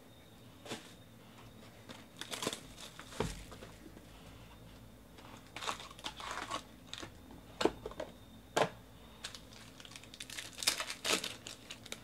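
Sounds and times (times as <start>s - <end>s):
foil wrapper crinkling and tearing: 2.2s - 3.2s, 5.4s - 7.0s, 9.2s - 12.0s.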